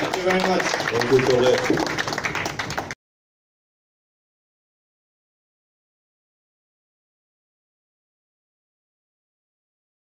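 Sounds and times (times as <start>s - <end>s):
audience applauding: 0.0s - 3.0s.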